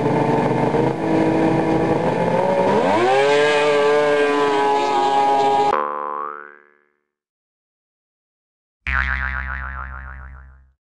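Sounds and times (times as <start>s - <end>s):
cartoon boing sound effect: 5.7s - 7.0s, 8.9s - 10.8s.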